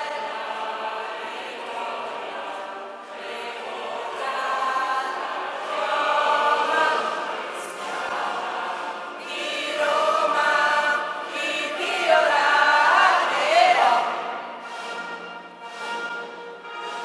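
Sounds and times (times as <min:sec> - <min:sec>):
crowd singing in unison: 0:00.0 - 0:17.0.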